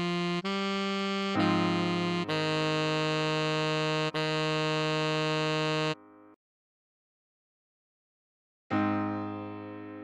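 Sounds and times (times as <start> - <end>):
synthesized saxophone note: 0.0 - 6.0.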